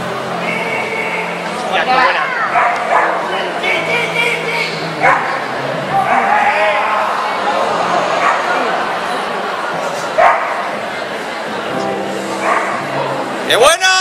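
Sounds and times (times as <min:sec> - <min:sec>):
crowd murmur: 0:00.0 - 0:14.0
dog barking: 0:02.5 - 0:03.3, 0:05.0 - 0:05.4, 0:08.2 - 0:08.5, 0:10.2 - 0:10.7, 0:12.4 - 0:12.8.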